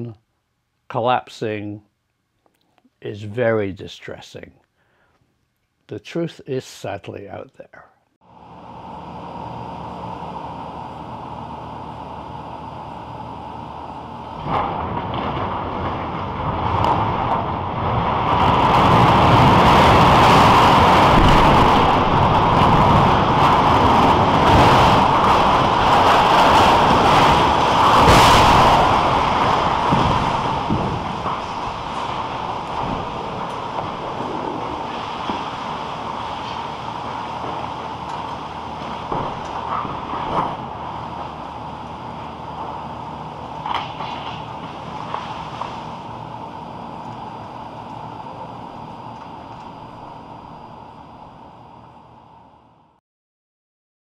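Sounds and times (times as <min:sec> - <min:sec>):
lingering rumble: 0:08.3 - 0:53.0
loud crashing roar: 0:13.5 - 0:46.3
falling debris impacts: 0:14.2 - 0:47.6
sudden crack: 0:14.4 - 0:41.4, 0:43.6 - 0:46.0.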